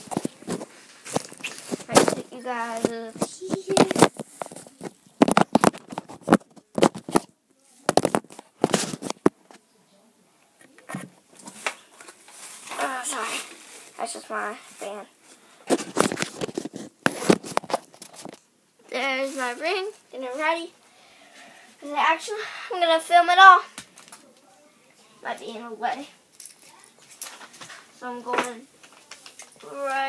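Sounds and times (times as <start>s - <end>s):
boy singing or speaking: 1.9s - 4.0s, 18.8s - 20.8s, 21.8s - 23.7s, 29.6s - 30.0s.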